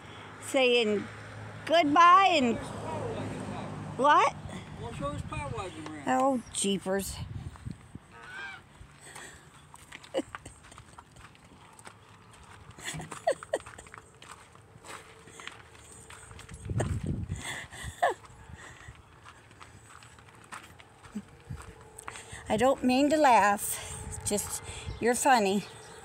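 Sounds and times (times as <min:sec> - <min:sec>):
footsteps crunching on gravel: 0:07.4 - 0:26.0.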